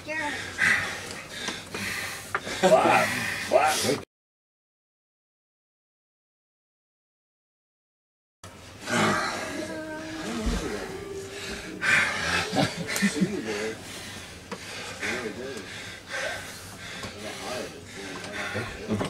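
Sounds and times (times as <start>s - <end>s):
men grunting and breathing hard: 0.0s - 4.0s, 8.7s - 19.0s.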